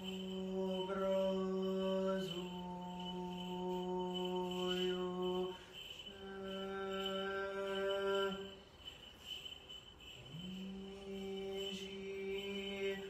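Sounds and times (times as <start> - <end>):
person chanting long notes: 0.0 - 8.6, 10.2 - 13.0.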